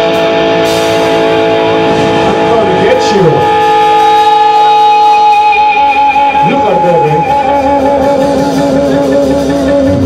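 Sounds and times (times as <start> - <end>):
electric guitar sustained bending notes: 0.0 - 10.0
rock band playing: 0.0 - 10.0.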